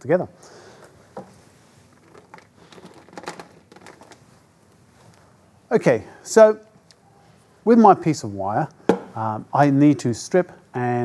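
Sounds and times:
wire handling clicks and rustles: 0.8 - 5.4.

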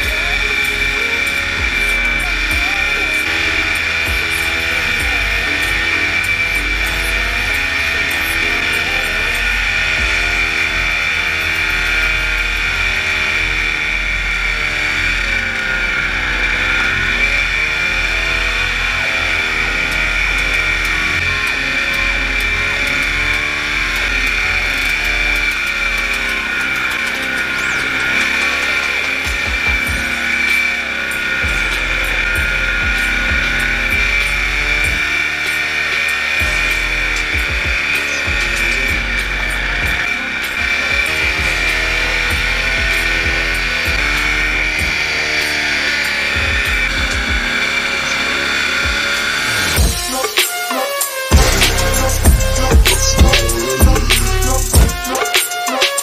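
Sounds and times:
paramotor engine drone: 0.0 - 50.0, 51.3 - 55.2.

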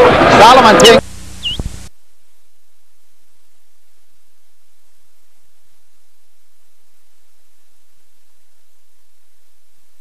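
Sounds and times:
low electrical hum: 0.0 - 10.0
static hiss: 0.4 - 10.0
high chirp: 1.4 - 1.7.

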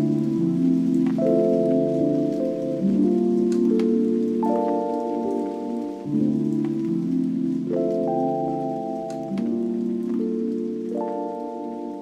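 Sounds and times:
faint crackle: 0.0 - 12.0
lo-fi hip hop chords: 0.0 - 12.0.

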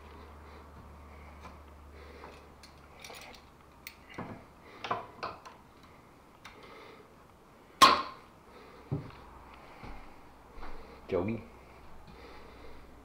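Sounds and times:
hand tools clicking and tapping: 2.2 - 6.7.

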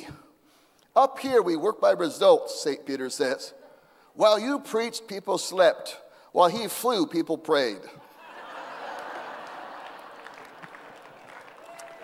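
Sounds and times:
audience clapping: 8.8 - 12.0.

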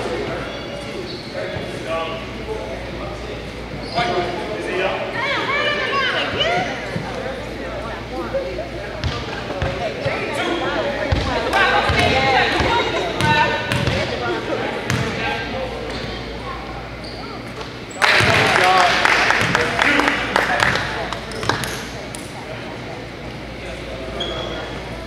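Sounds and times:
people talking: 0.0 - 25.0
basketball bouncing on hardwood: 11.9 - 14.0.

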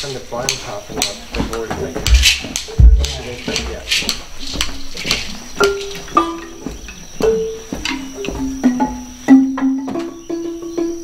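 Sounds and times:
marimba notes: 4.8 - 11.0.

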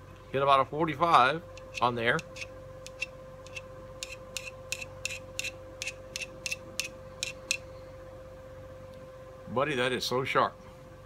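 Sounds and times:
sharpener scraping chisel edge: 1.6 - 7.6.

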